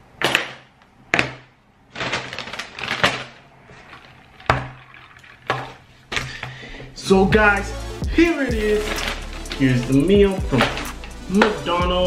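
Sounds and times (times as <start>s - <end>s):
paper bag rustling: 1.9s - 5.0s, 8.4s - 11.6s
keys set down on table: 10.6s - 11.6s.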